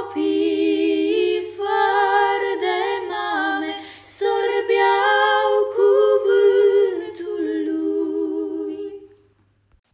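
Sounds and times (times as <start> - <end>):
women singing in harmony: 0.0 - 9.2.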